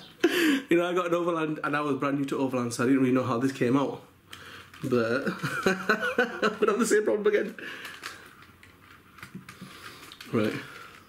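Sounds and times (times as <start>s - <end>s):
person speaking: 4.8s - 7.8s.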